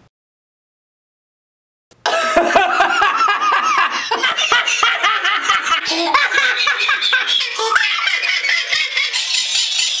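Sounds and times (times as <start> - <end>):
man laughing hysterically: 2.0 - 10.0.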